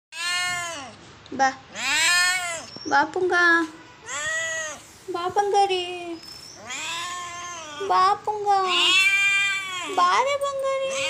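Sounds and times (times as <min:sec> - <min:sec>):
kitten meowing loudly: 0:00.1 - 0:00.9, 0:01.8 - 0:02.7, 0:04.0 - 0:04.8, 0:06.6 - 0:07.9, 0:08.6 - 0:10.0.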